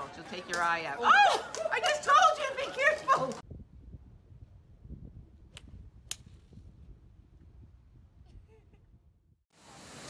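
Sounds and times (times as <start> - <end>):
wind rumble on microphone: 3.4 - 9.4.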